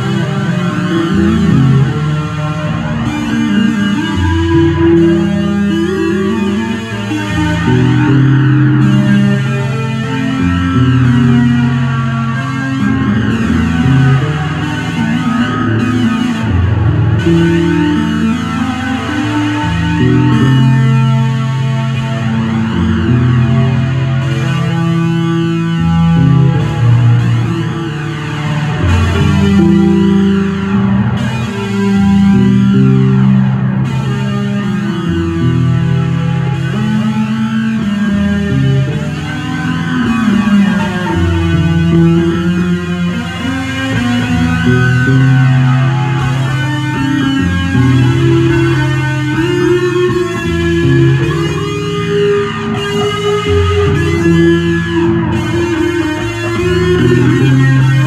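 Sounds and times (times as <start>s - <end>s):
electric bass ambient improvisation: 0.0s - 58.0s.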